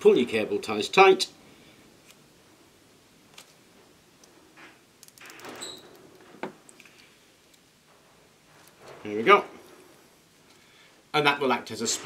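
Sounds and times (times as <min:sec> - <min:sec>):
handling rustles: 0:03.3 - 0:10.8.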